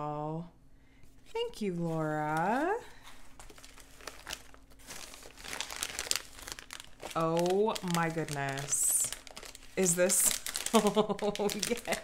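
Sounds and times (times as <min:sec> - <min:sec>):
paper wrapping crinkling: 0:01.7 - 0:12.0.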